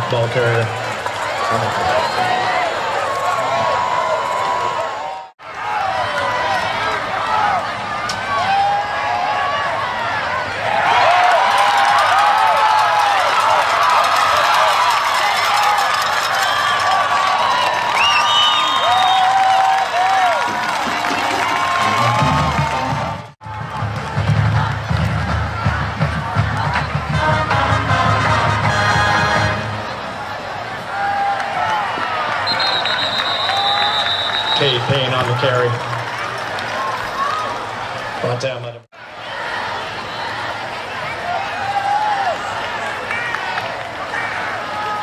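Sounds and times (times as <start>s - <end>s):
stadium crowd cheering: 0.0s - 45.0s
high whistle: 18.0s - 19.5s, 32.4s - 34.8s
band music with drums: 20.9s - 29.6s.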